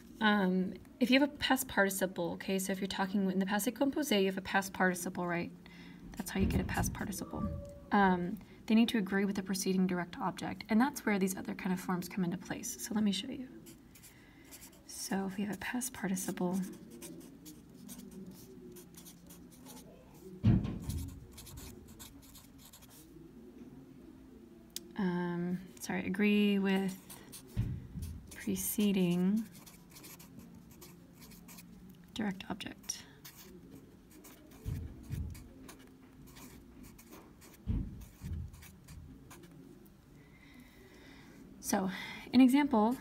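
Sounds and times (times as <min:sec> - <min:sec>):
loud thump: 0:06.3 - 0:07.8
scratchy pen strokes: 0:16.3 - 0:19.9, 0:20.8 - 0:23.1, 0:26.8 - 0:27.6, 0:28.2 - 0:31.7, 0:33.2 - 0:39.5.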